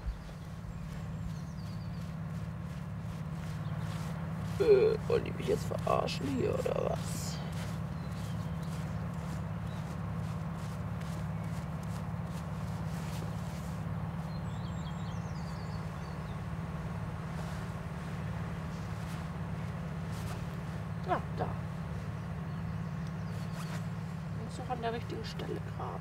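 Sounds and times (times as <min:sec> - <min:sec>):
bird chirps: 0:00.0 - 0:17.7, 0:18.7 - 0:25.8
hands scraping dry soil: 0:00.0 - 0:26.0.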